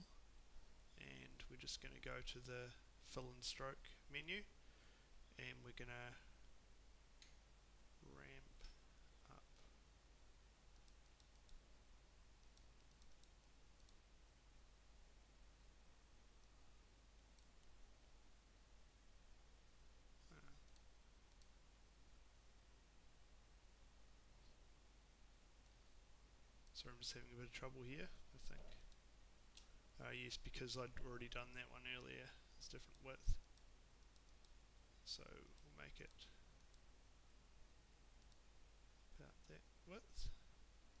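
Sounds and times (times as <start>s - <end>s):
faint low hum: 0.0s - 41.0s
man speaking: 1.0s - 4.5s, 5.4s - 6.3s, 8.0s - 9.5s, 26.8s - 28.9s, 30.0s - 33.4s, 35.0s - 36.4s, 39.2s - 40.4s
computer mouse clicks: 10.7s - 11.6s, 12.4s - 14.0s, 20.4s - 21.6s, 32.9s - 34.6s, 38.2s - 38.5s.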